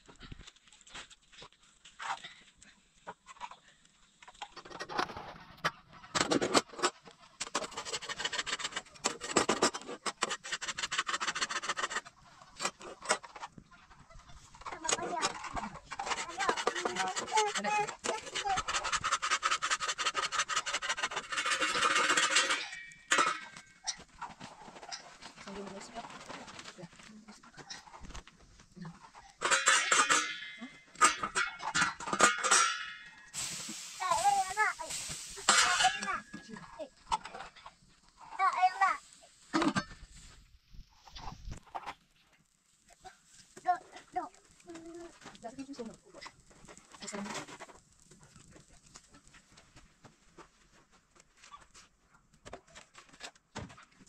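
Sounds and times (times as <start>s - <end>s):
cooking scraping and clatter: 0.0s - 40.4s, 41.0s - 54.0s
wood fire crackling: 0.0s - 54.0s
voices: 14.6s - 18.8s, 33.9s - 37.0s.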